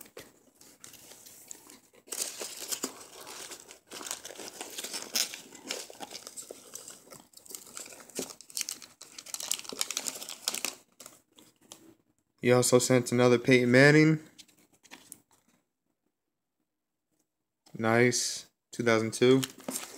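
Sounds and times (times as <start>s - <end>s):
rustling foam packing peanuts: 0.0s - 11.2s, 19.4s - 19.9s.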